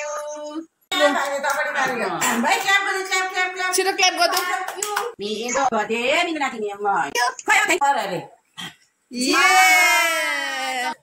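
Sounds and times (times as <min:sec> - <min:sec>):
people clapping: 0:01.0 - 0:03.0, 0:04.2 - 0:05.2
excited voices: 0:09.1 - 0:11.0.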